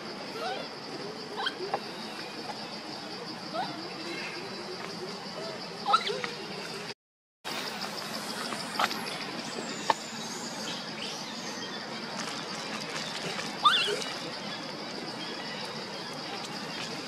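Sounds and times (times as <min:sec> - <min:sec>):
steady high-pitched drone: 0:07.5 - 0:12.2.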